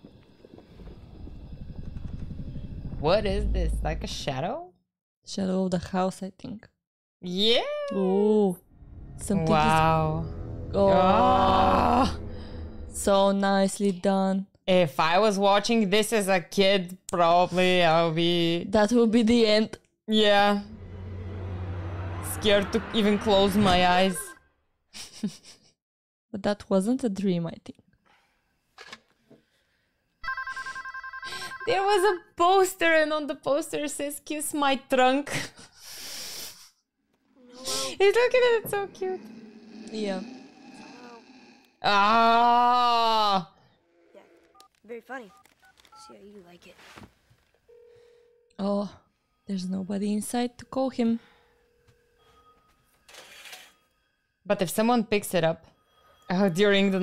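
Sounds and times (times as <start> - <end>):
low pulsing rumble: 0.7 - 4.2, 8.6 - 13.5, 20.3 - 24.3
telephone ringing: 30.2 - 32.0, 47.7 - 48.6.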